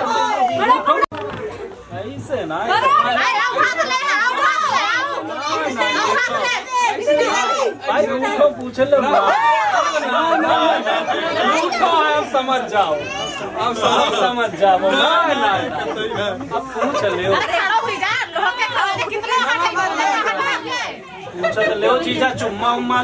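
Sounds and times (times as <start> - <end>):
group of people chattering: 0.0 - 23.0.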